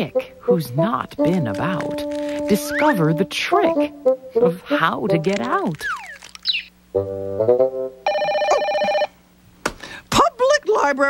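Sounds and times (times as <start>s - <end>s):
telephone ringing: 8.0s - 9.2s.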